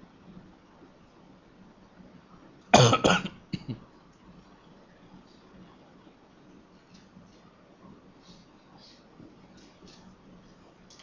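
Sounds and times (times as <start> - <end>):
person coughing: 2.8 - 3.8.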